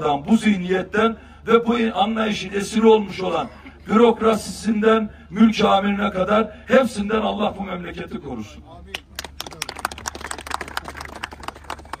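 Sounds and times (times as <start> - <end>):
people clapping: 8.9 - 12.0.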